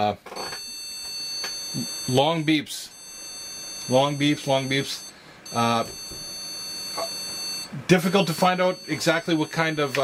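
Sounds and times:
long high-pitched motherboard beep: 0.4 - 10.0.

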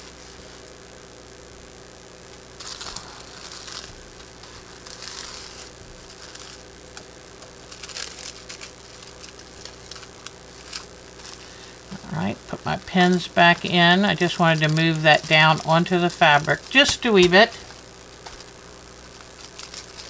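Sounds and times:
low hum: 0.0 - 20.0
paper rustling and crinkling: 2.6 - 20.0.

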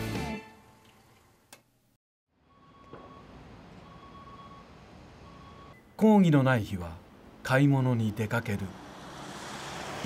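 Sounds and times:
low street hum: 2.3 - 10.0
faint electronic beeps: 2.4 - 6.0.

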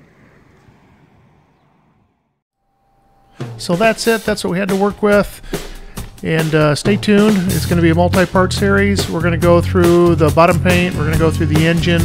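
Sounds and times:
wind on microphone: 0.0 - 2.4.

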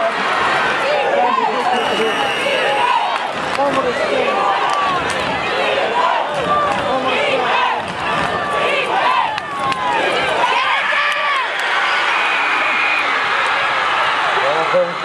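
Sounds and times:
crowd yelling and cheering: 0.0 - 15.0.

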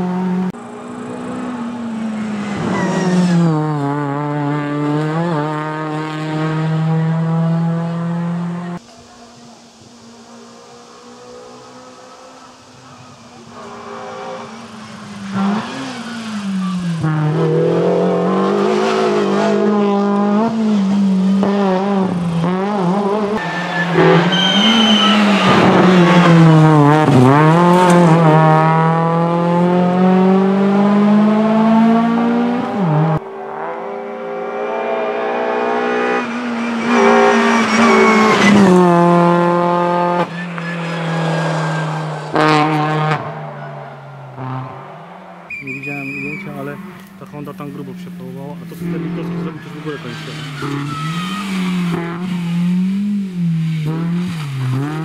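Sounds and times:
rally car engine revving: 0.0 - 55.0
tyre squeal: 2.1 - 3.6, 23.4 - 27.1, 36.1 - 38.8, 40.0 - 42.4, 45.5 - 47.0, 49.3 - 52.5.

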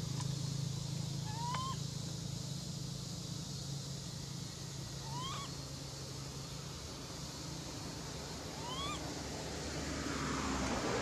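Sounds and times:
steady low hum: 0.0 - 10.4
baby monkey cooing: 1.2 - 1.8, 5.0 - 5.6, 8.6 - 9.0.

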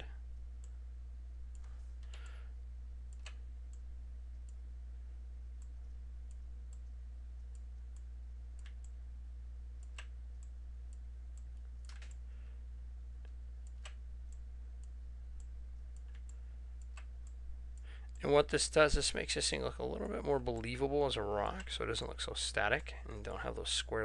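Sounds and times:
low electrical hum: 0.0 - 24.0.

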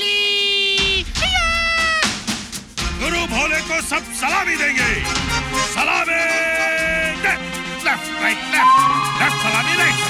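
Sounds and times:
music: 0.8 - 10.0.

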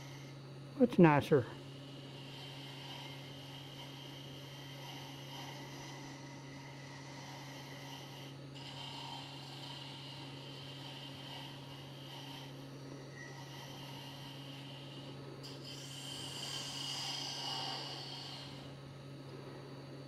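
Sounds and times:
lathe motor hum: 0.0 - 20.0.

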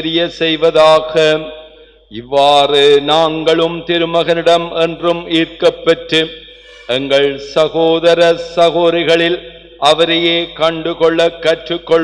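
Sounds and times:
man praying into a microphone: 0.0 - 12.0.

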